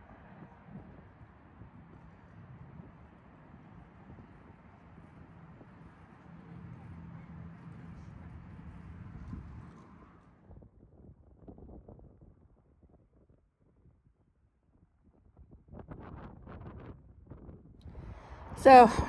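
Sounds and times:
wind buffeting microphone: 0:00.0 - 0:13.9, 0:14.8 - 0:19.0.

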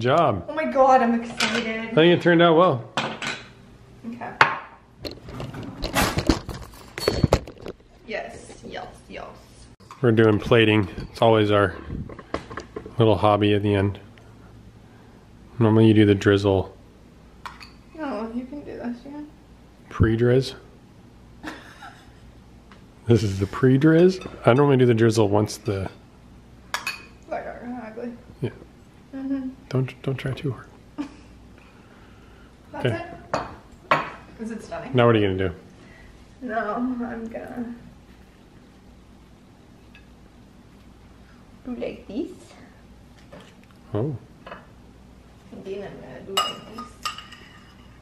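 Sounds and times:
metal spoon clinking ceramic dish: 0:46.4 - 0:48.0.

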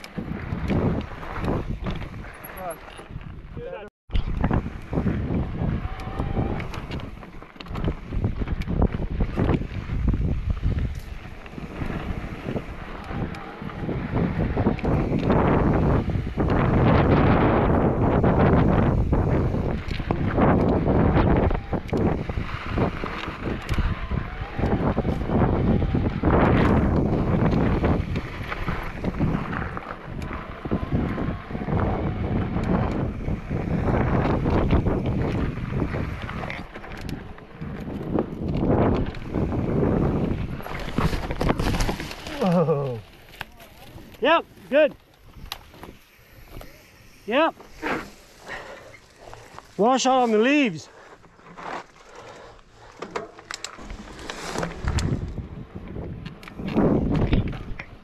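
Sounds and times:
wind rushing over microphone: 0:00.0 - 0:51.8, 0:52.4 - 0:58.0
bike rattling over bumps: 0:00.0 - 0:58.0
tyres on dirt and rocks: 0:00.0 - 0:58.0.

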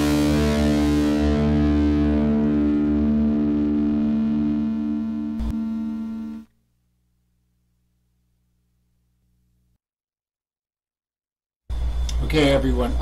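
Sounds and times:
electric guitar chord ringing: 0:00.0 - 0:06.5
faint hum: 0:01.7 - 0:09.8.

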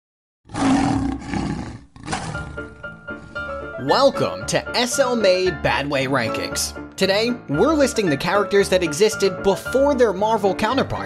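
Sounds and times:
lion roaring: 0:00.5 - 0:03.8.

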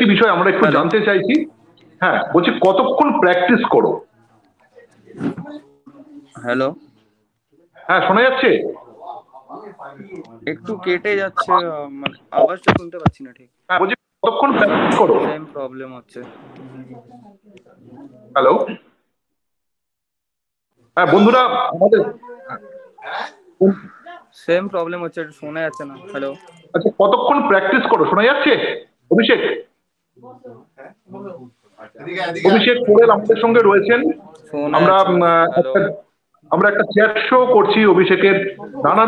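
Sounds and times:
garbled voice on video call: 0:00.0 - 0:04.1, 0:04.7 - 0:05.6, 0:07.8 - 0:15.6, 0:18.3 - 0:19.0, 0:21.0 - 0:24.4, 0:25.4 - 0:29.8, 0:30.7 - 0:39.0.

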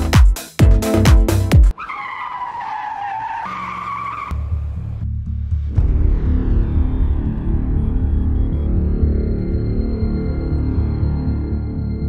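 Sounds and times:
music: 0:00.0 - 0:01.7, 0:04.3 - 0:12.0
car tyres screeching: 0:01.7 - 0:05.0
low rumble: 0:04.4 - 0:12.0.

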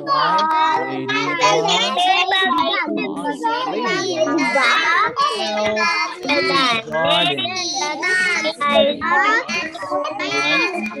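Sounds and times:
children reading aloud in chorus: 0:00.0 - 0:11.0.

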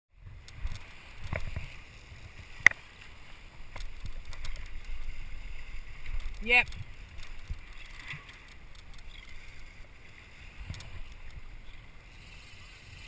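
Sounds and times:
low rumble of hull and water: 0:00.1 - 0:13.0.

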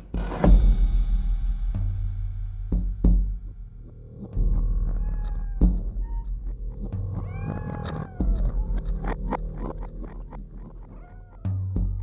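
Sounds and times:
gliding cat-like call: 0:04.6 - 0:12.0.

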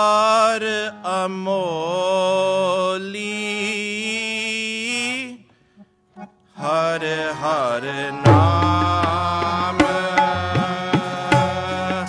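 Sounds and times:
sustained harmonium: 0:00.0 - 0:12.0.

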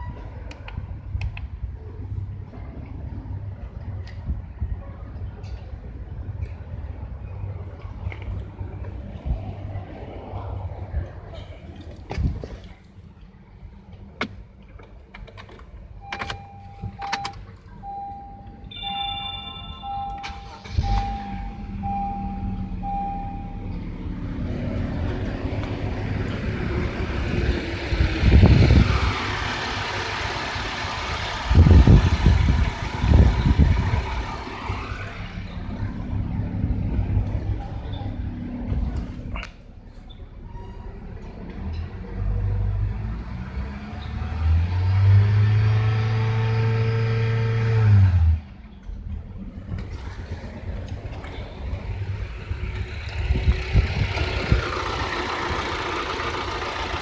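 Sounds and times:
car engine revving: 0:41.2 - 0:48.6.

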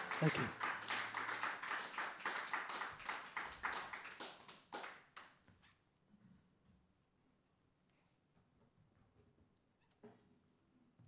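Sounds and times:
audience clapping: 0:00.0 - 0:05.3.

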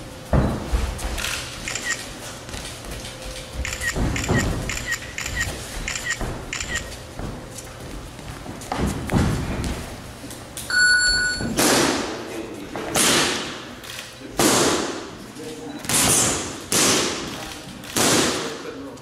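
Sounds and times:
short electronic beep: 0:10.7 - 0:11.5.

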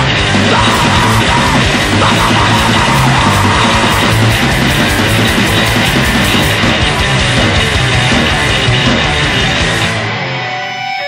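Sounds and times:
fast distorted punk music: 0:00.0 - 0:11.0
rapid drum hits: 0:00.1 - 0:09.9.

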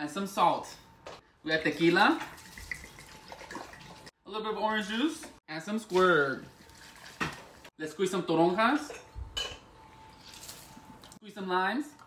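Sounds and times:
liquid pouring from glass bottle: 0:02.2 - 0:04.1.

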